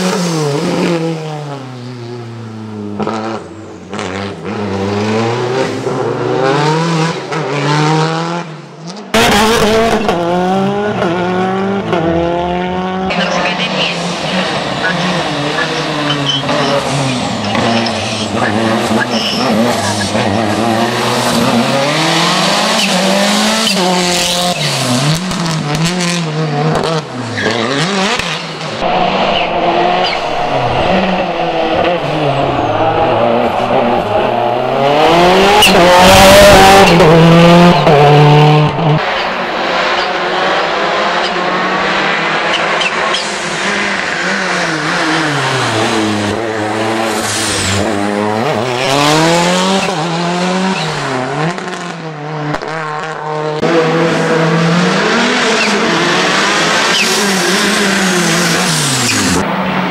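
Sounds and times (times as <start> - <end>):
rally car engine revving: 0.0 - 59.9.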